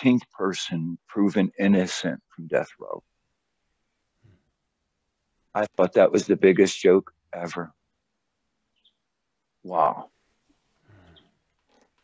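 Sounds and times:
faint low grunt: 10.8s - 11.4s.

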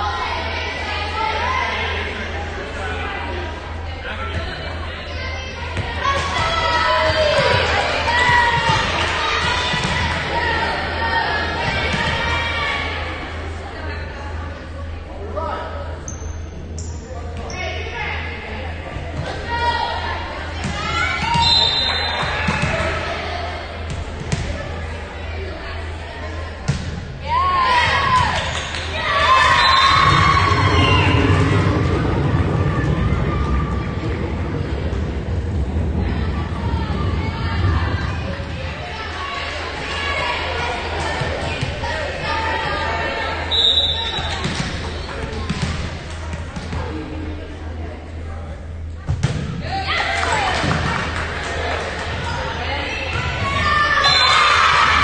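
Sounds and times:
players and spectators calling out: 0.0s - 14.5s, 15.1s - 48.9s, 49.6s - 55.0s
voices: 0.0s - 55.0s
referee's whistle: 21.4s - 22.3s, 29.5s - 30.0s, 43.5s - 44.4s, 54.0s - 54.5s.

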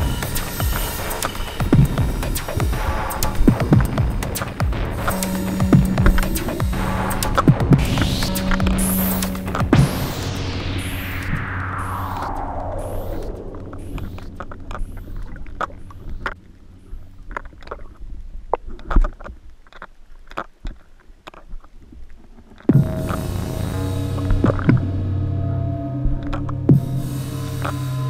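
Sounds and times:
sharp clicks: 0.0s - 9.8s
falling sweep: 0.0s - 16.1s
background music with drones: 0.0s - 16.3s, 22.7s - 28.0s.

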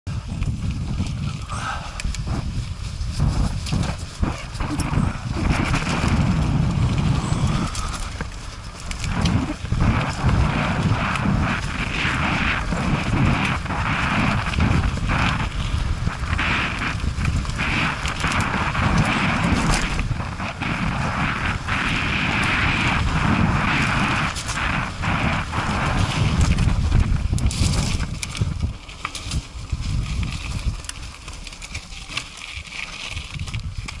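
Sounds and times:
wind rumble on microphone: 0.0s - 34.0s
bike rattling and knocking: 0.1s - 34.0s
tyres crunching over gravel: 0.5s - 34.0s.

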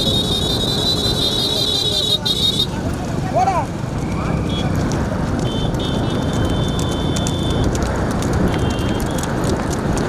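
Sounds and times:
motorcycle engines running: 0.0s - 10.0s.

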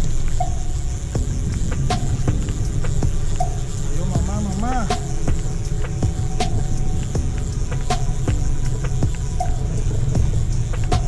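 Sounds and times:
boat engine rumbling: 0.0s - 11.0s.

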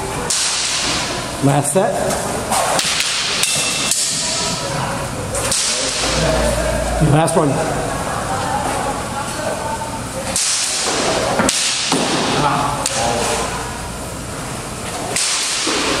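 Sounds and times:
faint voices: 4.0s - 11.4s.

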